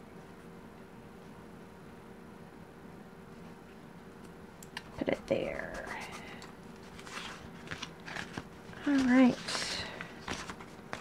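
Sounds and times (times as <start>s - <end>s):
paper sheets rustling: 5.8s - 11.0s.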